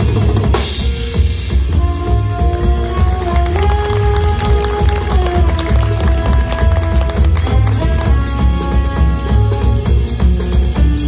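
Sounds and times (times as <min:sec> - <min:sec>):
double bass: 0:00.0 - 0:11.0
drum kit and cymbal strokes: 0:00.0 - 0:11.0
jazz big band playing: 0:00.0 - 0:11.0.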